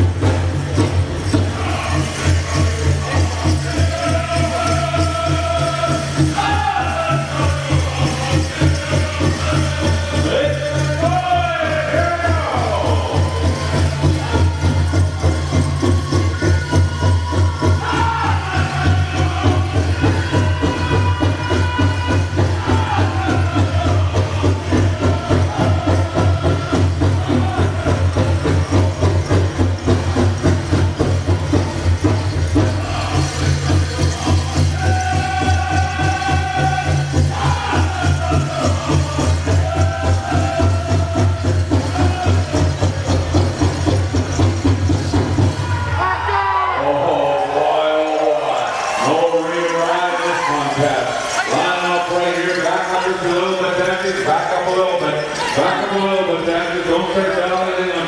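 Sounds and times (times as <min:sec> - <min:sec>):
jingling bells: 0:00.0 - 0:58.0
group singing high-pitched phrases: 0:01.3 - 0:14.8, 0:16.3 - 0:29.4, 0:32.6 - 0:43.5.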